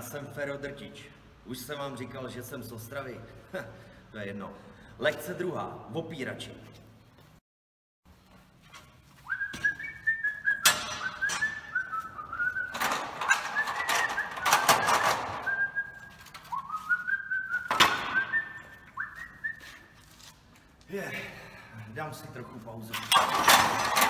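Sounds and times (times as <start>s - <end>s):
person whistling a tune: 9.2s - 20.0s
clattering: 10.5s - 16.4s, 23.0s - 24.0s.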